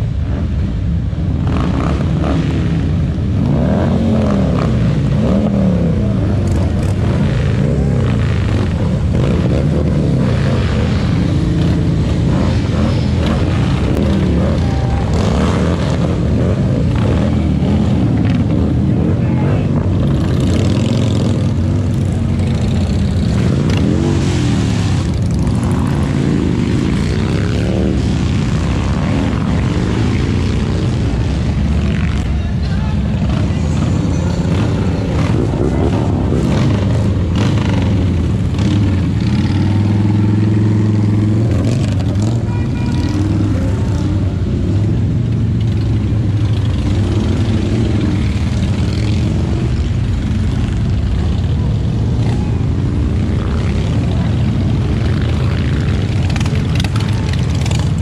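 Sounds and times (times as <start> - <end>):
motorcycles riding past: 0.0 - 58.0.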